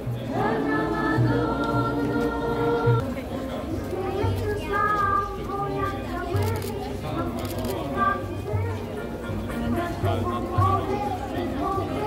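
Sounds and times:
group singing a hymn: 0:00.1 - 0:05.7, 0:09.6 - 0:12.0.

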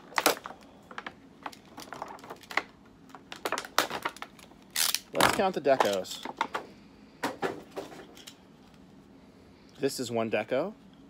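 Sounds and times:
plastic package clicking and crackling: 0:00.0 - 0:06.1.

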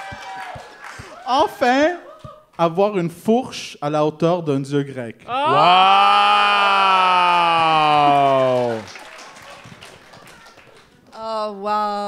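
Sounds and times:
audience clapping: 0:00.0 - 0:02.6, 0:06.6 - 0:11.2.

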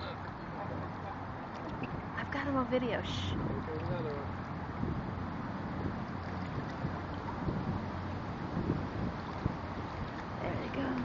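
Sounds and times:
river water flowing: 0:00.0 - 0:11.0
wind rumbling on microphone: 0:00.0 - 0:11.0.

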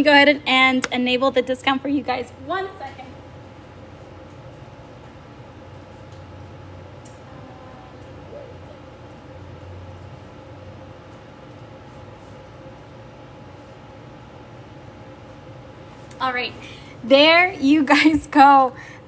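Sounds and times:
background hum: 0:00.0 - 0:19.0.

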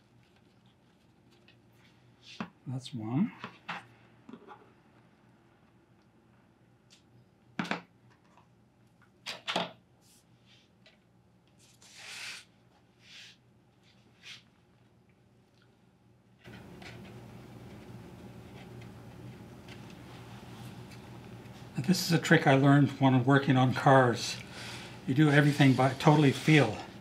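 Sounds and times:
steady background hiss: 0:16.5 - 0:27.0.

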